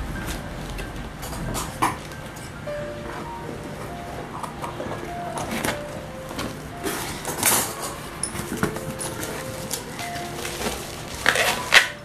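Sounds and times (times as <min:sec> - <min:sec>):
cardboard and bubble wrap rustling: 0:02.9 - 0:12.0.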